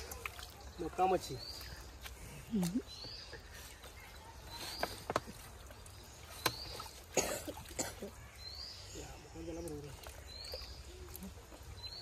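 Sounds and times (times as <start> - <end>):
sharp water slaps: 4.8 - 8.2.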